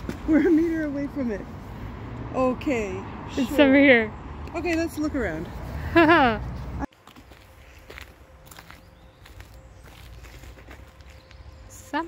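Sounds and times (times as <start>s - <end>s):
footsteps crunching on gravel: 6.6s - 11.9s.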